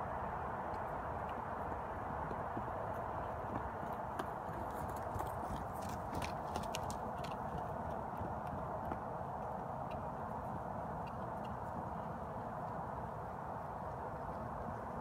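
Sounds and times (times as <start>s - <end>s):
horse hoofbeats: 1.2s - 15.0s.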